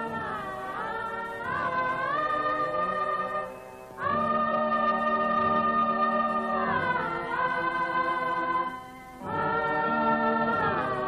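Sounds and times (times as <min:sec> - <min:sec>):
choir-like voices holding notes: 0:00.0 - 0:11.0.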